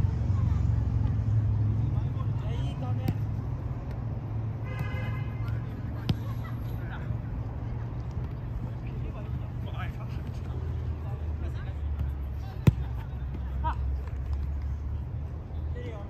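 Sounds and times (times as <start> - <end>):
football being kicked: 2.9 - 4.0, 12.0 - 14.4.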